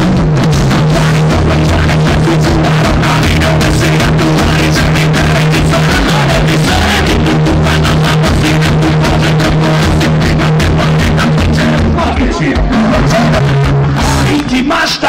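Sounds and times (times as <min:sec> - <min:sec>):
bass line: 0:00.0 - 0:15.0
drums beating fast: 0:00.0 - 0:15.0.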